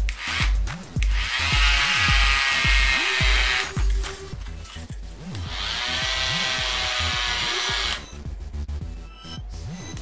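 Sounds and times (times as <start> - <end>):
electronic music with steady beat: 0.0 - 10.0
small motor whining: 1.1 - 3.7, 5.4 - 8.1.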